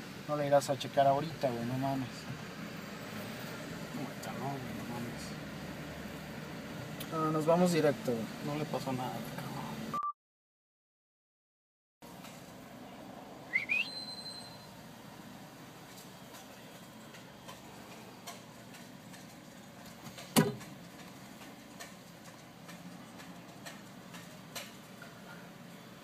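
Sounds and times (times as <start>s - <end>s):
squeak rising into whistle: 13.5s - 14.7s.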